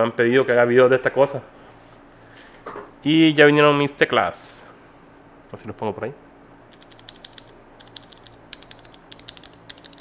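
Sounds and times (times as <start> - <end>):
keyboard switches clicking: 6.8 - 10.0.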